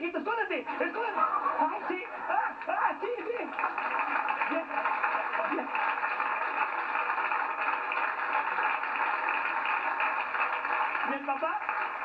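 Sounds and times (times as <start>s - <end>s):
audience laughing and applauding: 0.5s - 12.0s.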